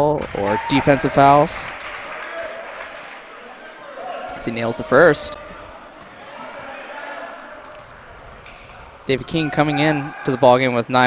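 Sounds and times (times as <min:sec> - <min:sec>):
crowd chatter: 0:00.7 - 0:11.0.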